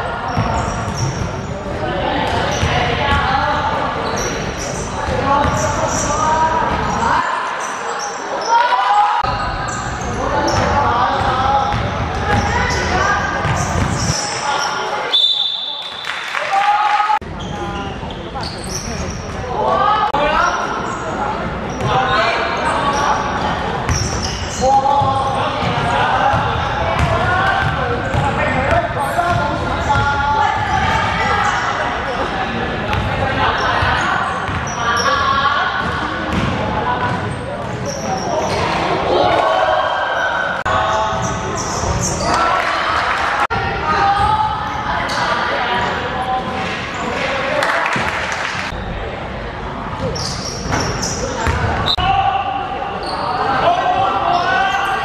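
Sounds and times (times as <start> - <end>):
players' voices echoing: 0.0 - 55.0.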